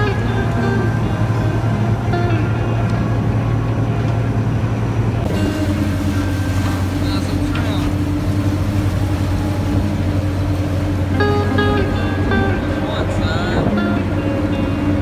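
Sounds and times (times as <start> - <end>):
boat engine droning: 0.0 - 15.0
water rushing along hull: 0.0 - 15.0.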